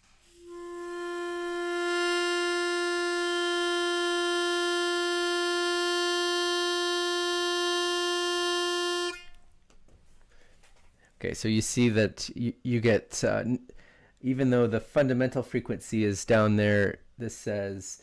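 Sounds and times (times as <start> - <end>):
harmonica holding a steady note: 0.3 - 9.4.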